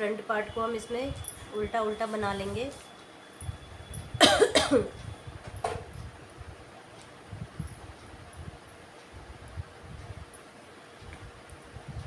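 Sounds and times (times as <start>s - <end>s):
woman coughing: 4.2s - 4.9s.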